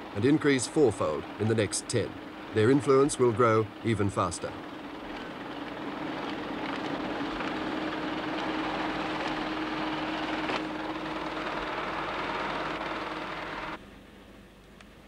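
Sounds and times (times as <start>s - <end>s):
computer machinery whirring: 0.0s - 13.8s
low hum: 0.0s - 14.9s.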